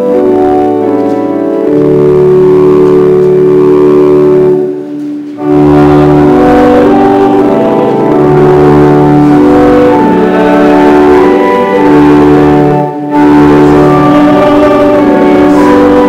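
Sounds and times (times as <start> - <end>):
church organ playing a hymn: 0.0 - 16.0.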